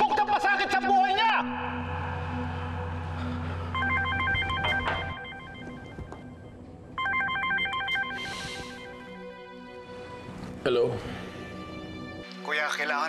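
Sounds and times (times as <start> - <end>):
soft background music: 0.0 - 13.0
warbling phone ringtone: 3.7 - 9.0.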